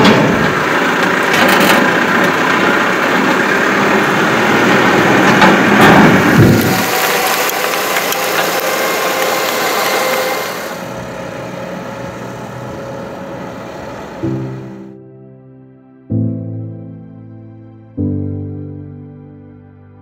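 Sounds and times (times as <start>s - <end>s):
tractor diesel engine under load: 0.0s - 15.0s.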